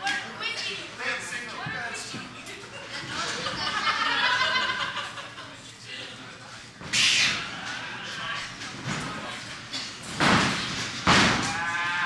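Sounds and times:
loud harsh shout: 11.4 - 12.0.

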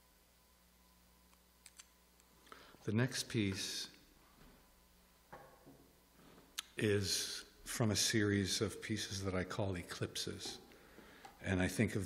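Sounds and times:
man speaking: 2.8 - 4.0, 6.6 - 10.7, 11.4 - 12.0.

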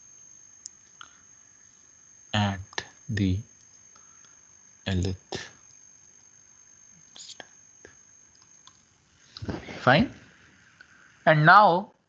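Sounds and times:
room hiss: 0.0 - 12.0
stylus scratching on a tablet: 9.4 - 10.0.

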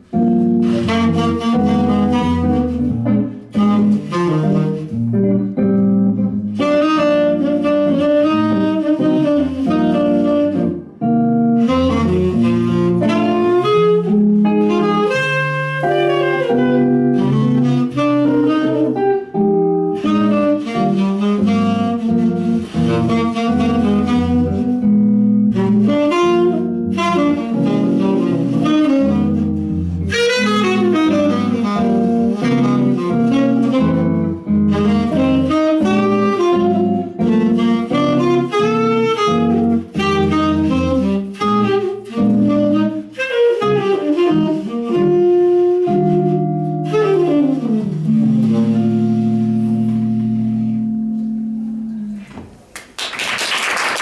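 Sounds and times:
electric guitar chords and bass notes: 0.0 - 52.2
tenor saxophone melody: 0.0 - 52.4.

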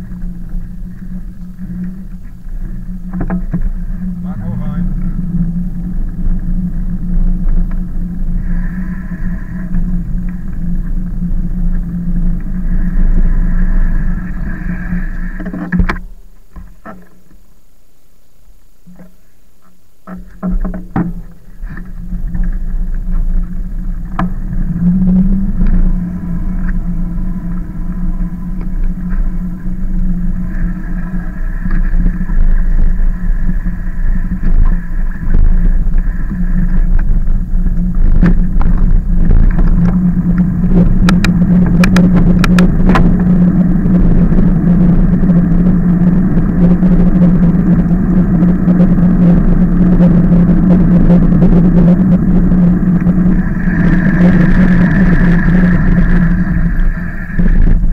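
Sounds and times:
wind over microphone: 0.0 - 17.0, 20.4 - 57.9
bike riding hum and rumble: 0.0 - 57.9.

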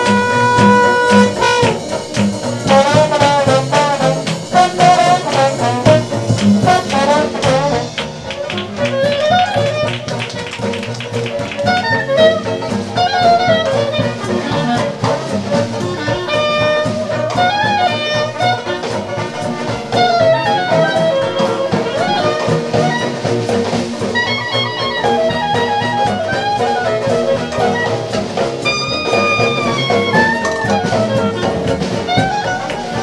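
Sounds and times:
jazz band playing: 0.0 - 33.0.

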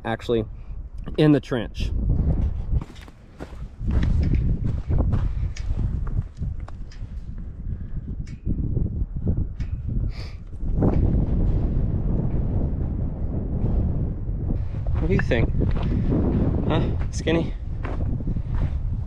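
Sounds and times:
wind rumbling on microphone: 0.0 - 19.0
footsteps on dry dirt: 2.4 - 7.4, 14.6 - 18.8.

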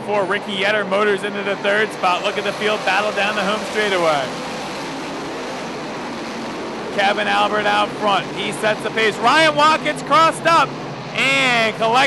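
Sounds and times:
race car engines at speed: 0.0 - 12.0.

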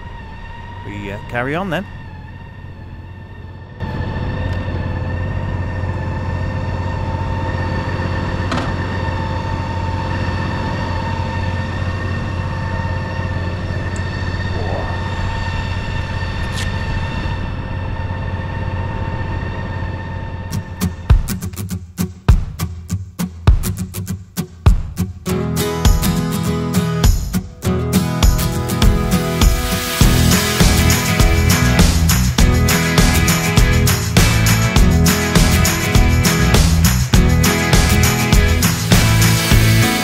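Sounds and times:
vehicle engine idling: 0.0 - 21.3.

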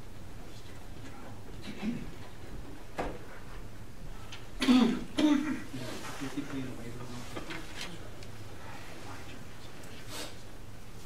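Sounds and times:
person clearing throat: 4.6 - 5.8.

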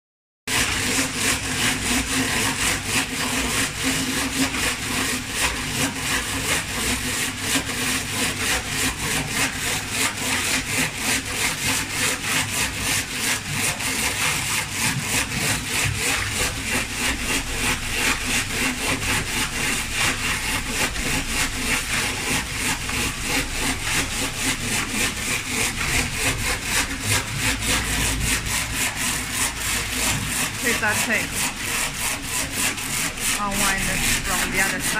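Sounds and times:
die cutting machine clatter: 0.5 - 34.9.

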